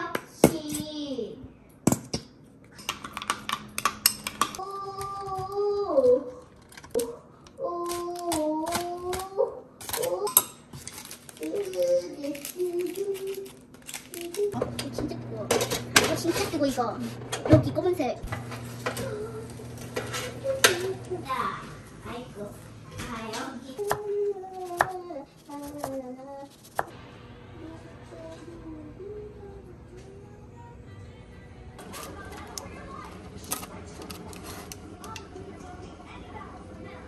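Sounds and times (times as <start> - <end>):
low steady hum: 0.8 - 37.0
kitchen utensils and dishes clicking: 1.9 - 4.6, 7.8 - 16.7
child singing: 4.6 - 6.4, 7.6 - 10.4, 23.3 - 26.6, 27.6 - 33.1.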